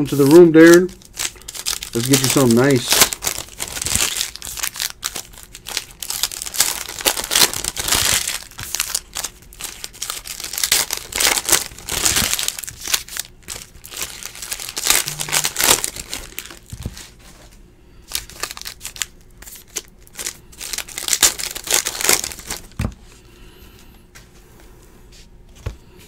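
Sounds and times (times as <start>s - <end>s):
foil wrappers crinkling and tearing: 0.0s - 17.4s, 18.0s - 22.9s.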